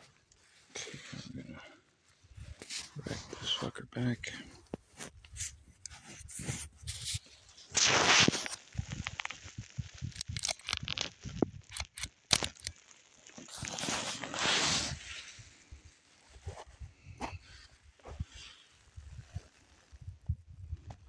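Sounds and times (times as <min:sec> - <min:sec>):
handling noise rustling and rubbing: 0:04.3 - 0:20.2
rough scraping burst: 0:06.2 - 0:12.7, 0:13.5 - 0:15.5.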